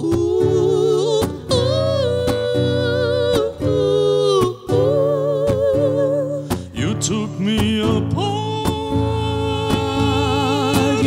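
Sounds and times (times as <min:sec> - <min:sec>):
woman singing with vibrato: 0:00.0 - 0:06.9
lower voice singing: 0:00.0 - 0:11.0
strummed acoustic guitar: 0:00.0 - 0:11.0.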